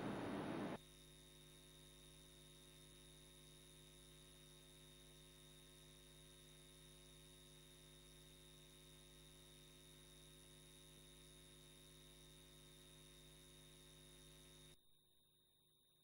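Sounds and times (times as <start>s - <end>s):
faint electrical hum: 0.0s - 14.8s.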